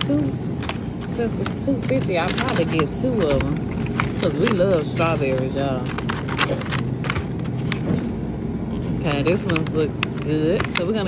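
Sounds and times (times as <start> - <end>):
plastic boxes clicking and crackling: 0.0 - 8.1, 9.0 - 11.0
low background hum: 0.0 - 11.0.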